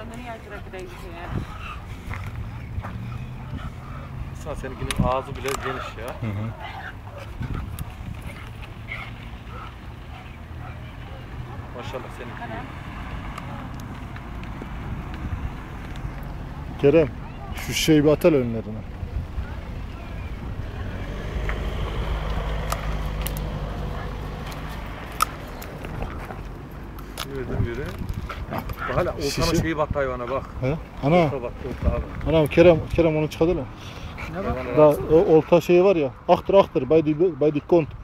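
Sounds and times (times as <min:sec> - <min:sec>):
vehicle engine rumble: 0:00.0 - 0:38.0.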